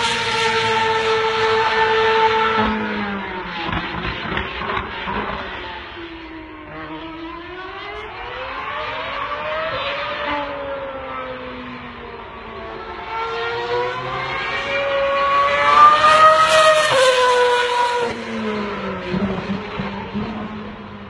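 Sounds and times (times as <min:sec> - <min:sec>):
racing car engine passing: 0:00.0 - 0:21.0.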